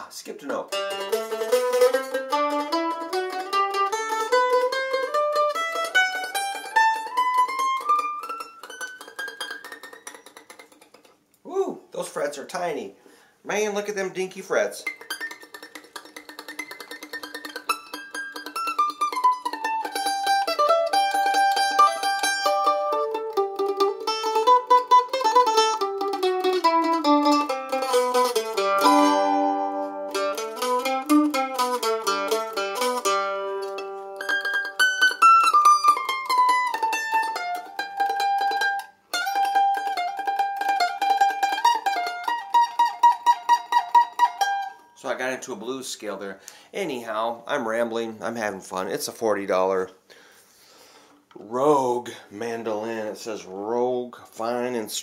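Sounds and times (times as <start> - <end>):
mandolin picked scale runs: 14.9 - 44.7.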